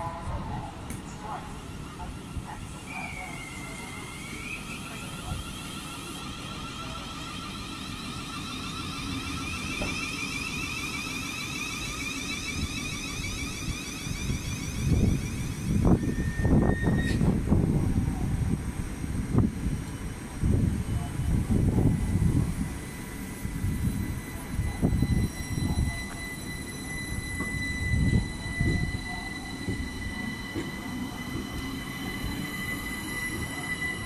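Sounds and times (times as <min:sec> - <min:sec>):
train traction whine: 0:00.0 - 0:34.0.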